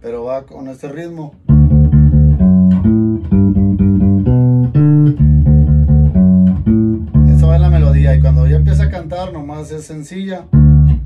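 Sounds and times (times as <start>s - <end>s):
electric bass guitar playing: 1.4s - 11.0s.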